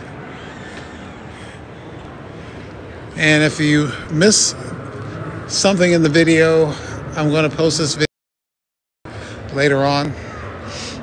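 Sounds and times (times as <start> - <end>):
exhibition hall hiss and hum: 0.0 - 8.1, 9.1 - 11.0.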